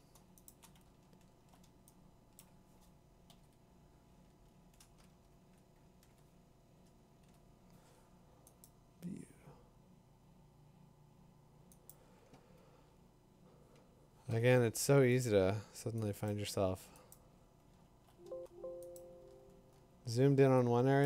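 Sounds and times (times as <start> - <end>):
low steady hum: 0.0 - 21.0
keyboard and mouse clicks: 0.1 - 3.6, 4.7 - 7.4.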